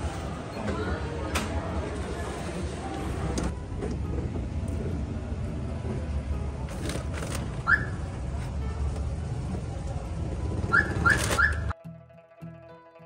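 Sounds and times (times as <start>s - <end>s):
low rumble of traffic and engines: 0.0s - 11.8s
plucked-string background music: 3.5s - 13.0s.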